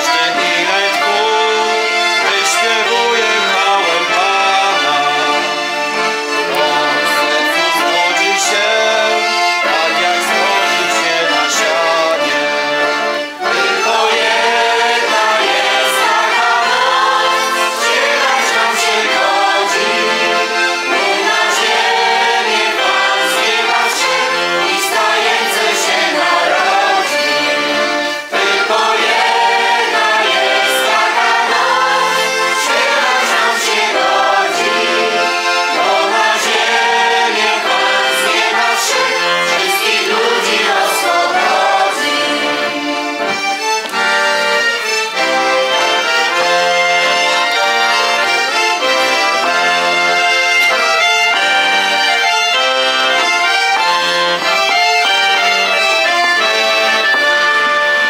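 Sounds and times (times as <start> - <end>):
accordion: 0.0 - 58.0
choir singing: 0.0 - 58.0
clarinet: 0.0 - 58.0.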